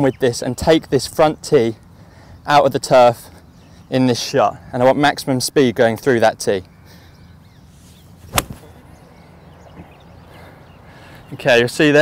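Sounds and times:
golf club striking ball: 0:08.2 - 0:08.8.

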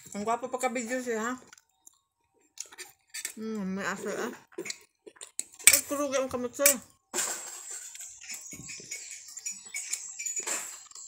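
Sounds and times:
chewing: 0:01.4 - 0:03.4, 0:04.0 - 0:05.7.

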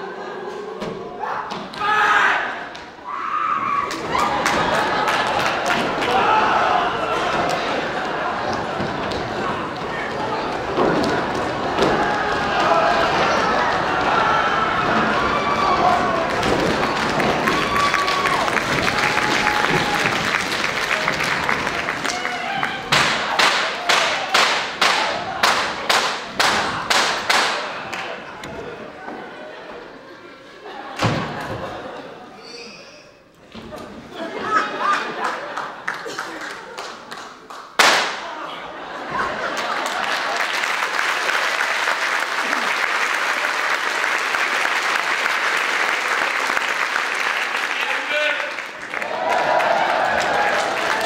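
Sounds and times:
many voices shouting: 0:00.0 - 0:28.5, 0:48.9 - 0:51.0
noisy stage sound: 0:00.0 - 0:51.0.

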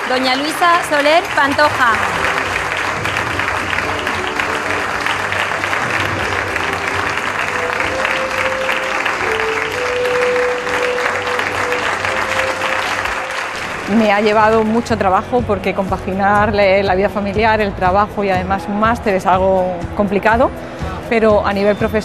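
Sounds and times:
audience applauding: 0:00.0 - 0:15.1
music with held notes: 0:02.0 - 0:13.9.

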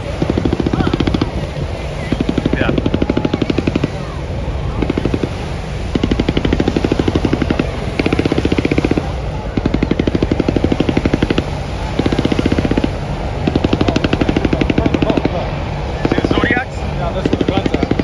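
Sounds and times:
helicopters rumbling: 0:00.0 - 0:18.0
machine-gun fire: 0:02.1 - 0:04.1, 0:04.8 - 0:15.4.

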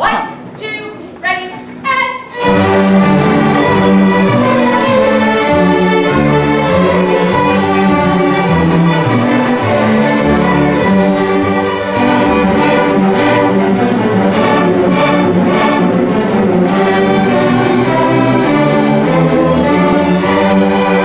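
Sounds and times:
string orchestra playing: 0:01.6 - 0:21.0
violins: 0:01.6 - 0:21.0.

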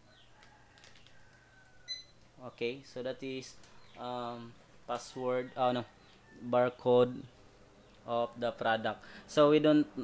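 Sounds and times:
barcode scanner beep: 0:01.9 - 0:02.2.

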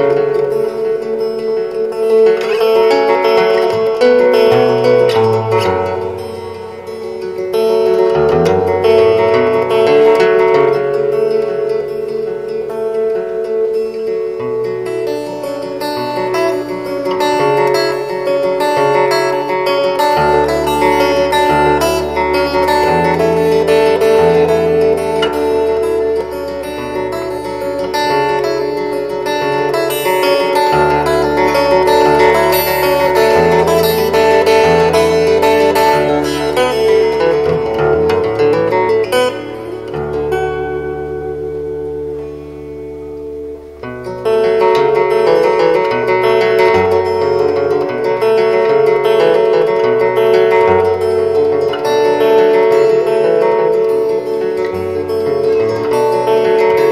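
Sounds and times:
fingerstyle acoustic guitar: 0:00.0 - 0:56.9.

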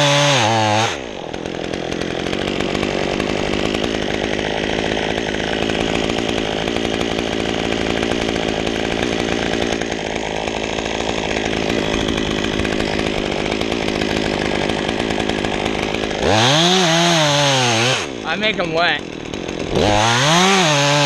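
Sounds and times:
chainsaw cutting wood: 0:00.0 - 0:21.0.

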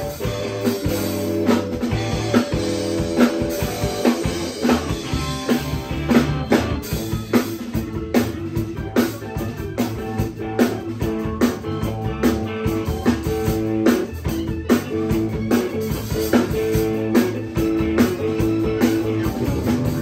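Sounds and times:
bass guitar: 0:00.0 - 0:20.0
drum kit: 0:00.0 - 0:20.0
electric guitar: 0:00.0 - 0:20.0
keyboard: 0:00.0 - 0:20.0.

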